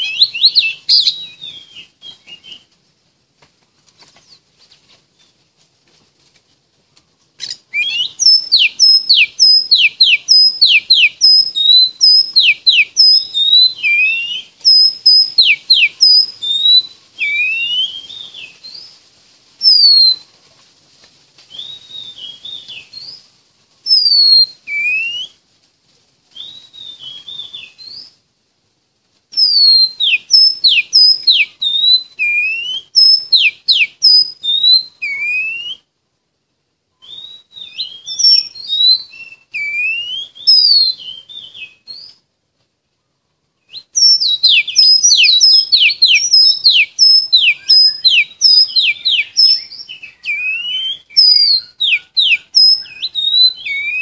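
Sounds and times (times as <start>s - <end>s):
bird singing clear whistles: 0.0s - 2.7s, 7.4s - 18.9s, 19.6s - 20.2s, 21.5s - 23.2s, 23.9s - 25.4s, 26.4s - 28.2s, 29.4s - 35.9s, 37.0s - 42.2s, 43.6s - 54.0s.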